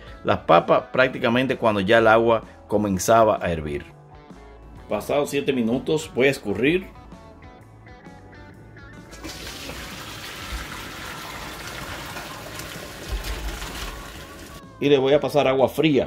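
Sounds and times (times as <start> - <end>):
water splashing into colander: 9.1 - 14.6.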